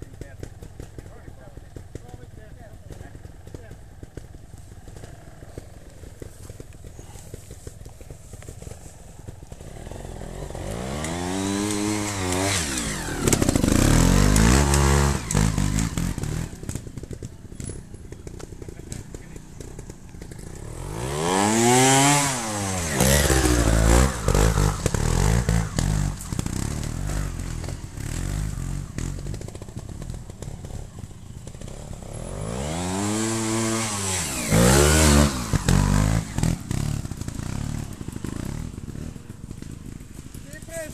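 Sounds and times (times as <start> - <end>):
motorcycle engine revving: 0.0 - 40.9.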